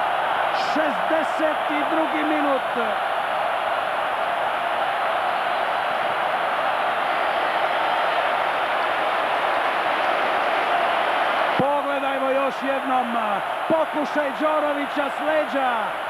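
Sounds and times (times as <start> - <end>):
stadium crowd noise: 0.0 - 16.0.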